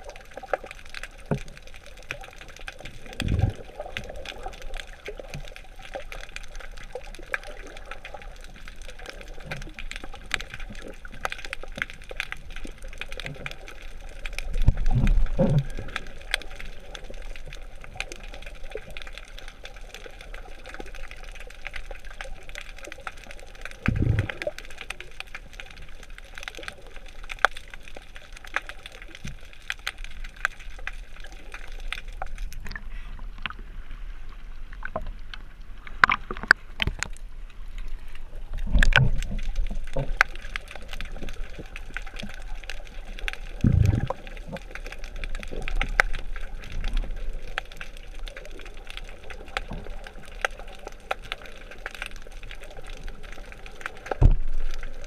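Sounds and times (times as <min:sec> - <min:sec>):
underwater crackle of fine clicks: 0:00.0 - 0:55.0
muffled low whooshes: 0:23.9 - 0:24.3, 0:43.6 - 0:44.1.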